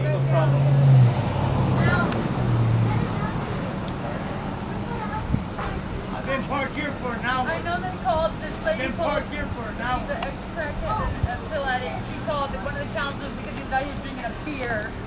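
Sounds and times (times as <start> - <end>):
vehicle engine humming: 0.0 - 15.0
faint talking voices: 1.6 - 15.0.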